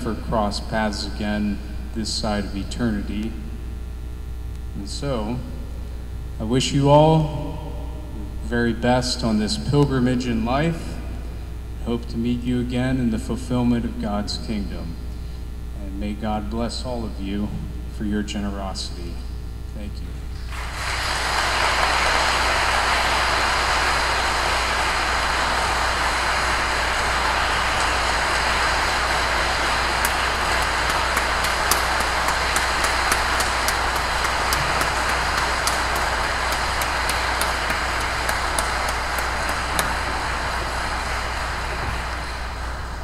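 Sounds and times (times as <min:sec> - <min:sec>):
congregation applauding: 0:20.5 - 0:43.0.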